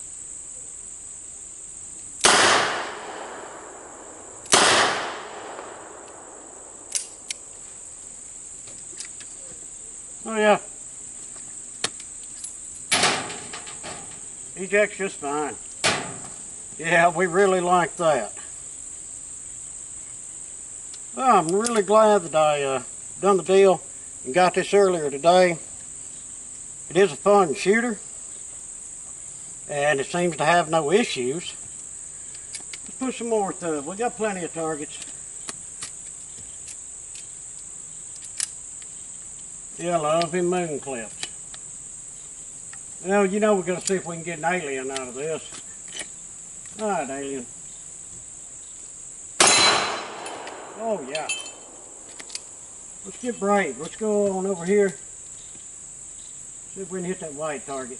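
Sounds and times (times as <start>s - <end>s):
crickets chirring: 0.0s - 57.9s
sharp metallic click: 4.4s - 7.5s, 49.4s - 52.5s.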